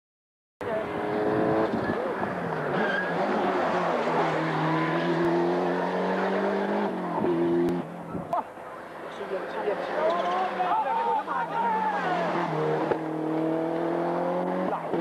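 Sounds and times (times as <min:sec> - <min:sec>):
tyres on tarmac: 0:00.6 - 0:15.0
rally car engine revving: 0:00.7 - 0:07.9, 0:11.5 - 0:15.0.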